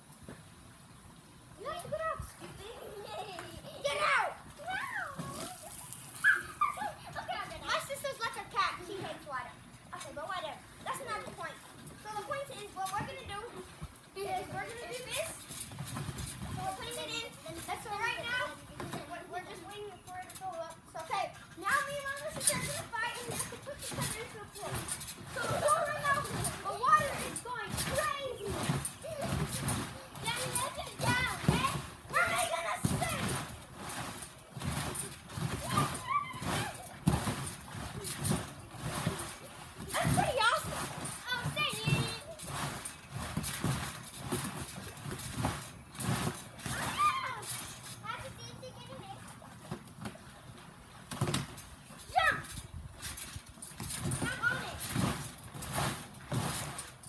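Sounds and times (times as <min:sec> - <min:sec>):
thumps of bouncing on trampoline: 0:01.6 - 0:57.0
children calling out: 0:02.6 - 0:07.3, 0:35.6 - 0:37.0.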